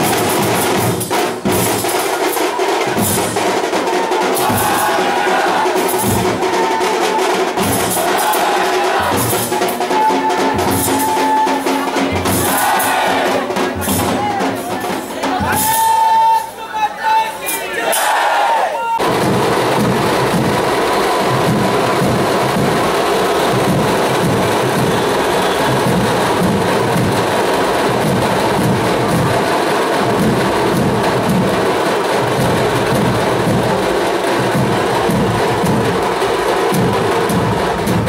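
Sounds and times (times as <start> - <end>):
crowd noise: 0.0 - 38.0
drum ensemble playing: 0.0 - 38.0.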